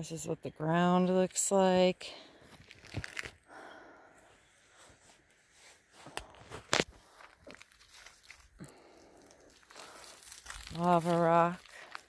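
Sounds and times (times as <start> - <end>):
footsteps through dry leaves: 7.0 - 12.0.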